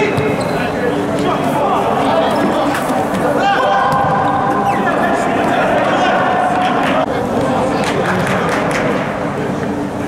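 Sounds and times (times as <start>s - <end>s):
players shouting: 0.6s - 7.4s.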